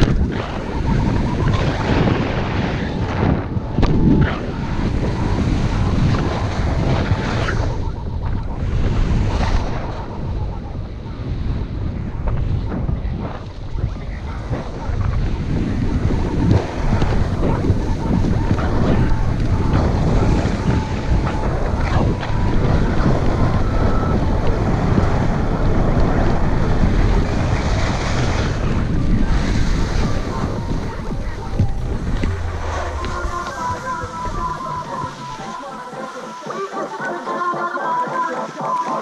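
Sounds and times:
wind on microphone: 0.0s - 36.7s.

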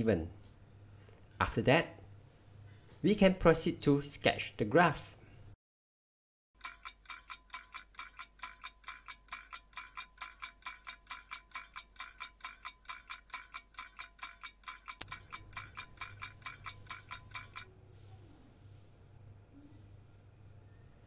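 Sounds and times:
fast clock ticking: 6.6s - 17.7s.

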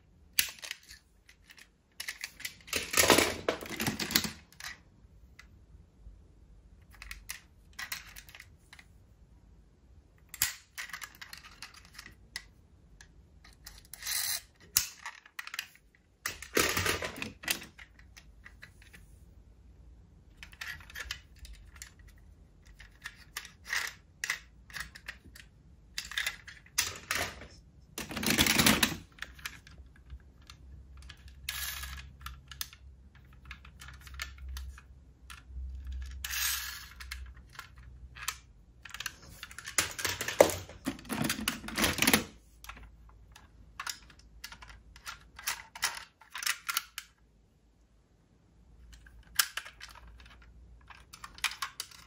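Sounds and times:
toy cars clicking and tapping: 0.4s - 4.8s, 6.8s - 8.5s, 10.3s - 19.0s, 20.4s - 27.4s, 28.0s - 47.2s, 48.9s - 52.0s
toy cars clattering: 0.4s - 4.9s, 6.8s - 8.6s, 10.2s - 19.0s, 20.4s - 47.2s, 48.9s - 52.0s.

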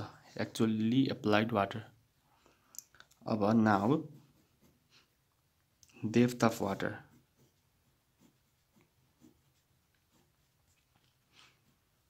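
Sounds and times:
pen scratching on paper: 3.4s - 5.2s, 6.1s - 12.0s.

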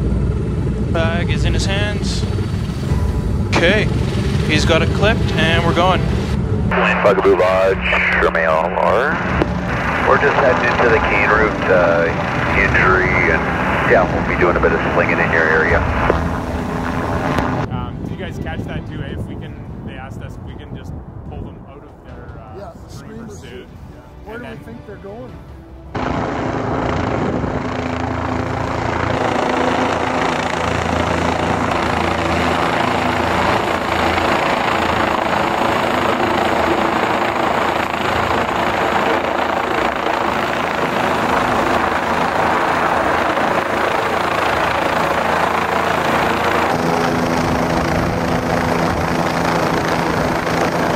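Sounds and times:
helicopter turbine hum: 0.0s - 24.5s, 25.3s - 50.9s
helicopter rotor blade noise: 0.0s - 24.6s, 25.2s - 50.9s.

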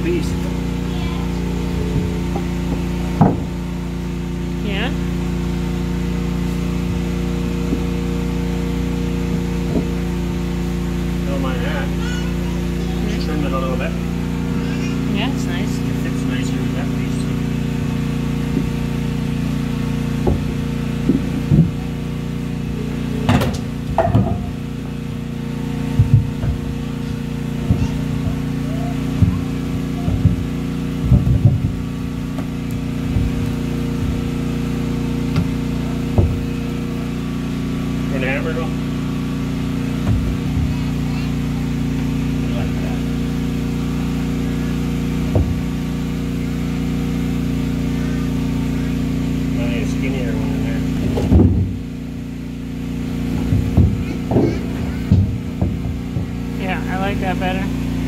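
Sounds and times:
low motor drone: 0.0s - 58.0s.

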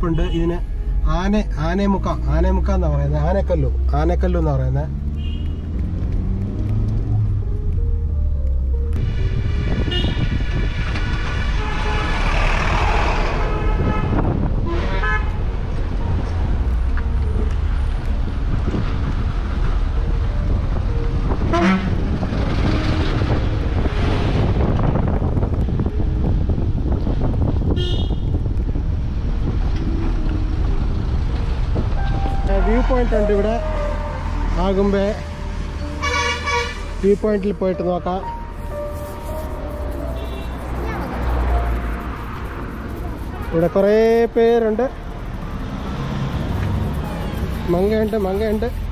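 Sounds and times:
road noise: 0.0s - 48.9s
vehicle horn toots: 5.2s - 5.6s, 9.9s - 10.3s, 11.6s - 15.3s, 21.5s - 22.0s, 27.7s - 28.3s, 36.0s - 36.9s, 40.2s - 41.5s
car engine: 33.1s - 48.9s.

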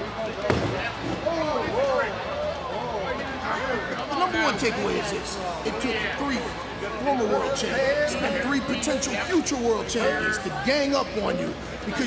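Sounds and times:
party chatter: 0.0s - 12.0s.

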